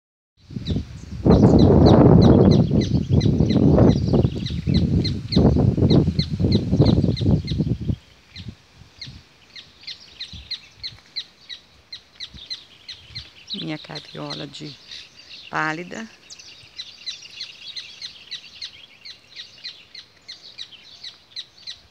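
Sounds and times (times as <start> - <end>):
bird chirping: 0.6 - 21.9.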